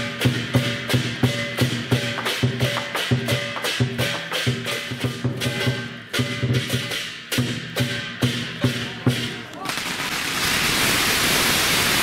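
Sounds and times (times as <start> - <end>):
barrel drum beating: 0.0 - 9.5
cymbals clashing: 0.0 - 10.2.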